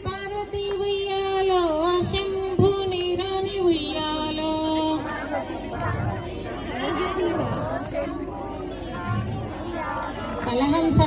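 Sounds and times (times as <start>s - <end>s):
woman singing folk song: 0.0s - 5.1s.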